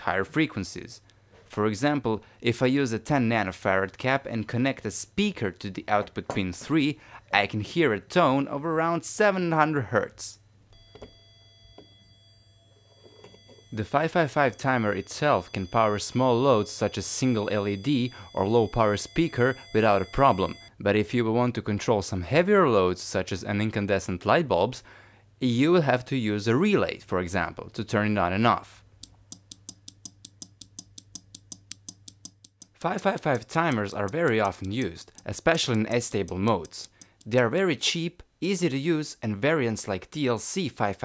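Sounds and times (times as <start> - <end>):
faint high whine: 8.3 - 20.8
square-wave tone from speaker: 10.4 - 20.8
speaker click: 29.0 - 37.4.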